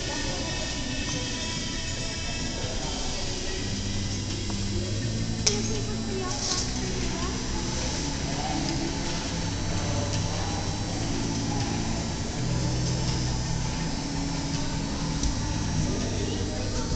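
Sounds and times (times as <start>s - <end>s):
constant low hum: 0.0s - 16.9s
indistinct voices: 0.0s - 16.9s.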